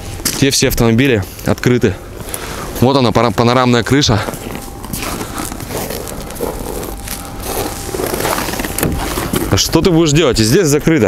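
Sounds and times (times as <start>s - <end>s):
steady outdoor noise: 0.0s - 11.0s.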